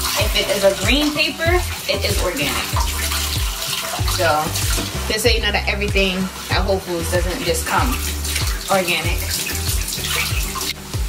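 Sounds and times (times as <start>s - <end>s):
onions sizzling in hot oil: 0.0s - 5.2s, 6.1s - 11.0s.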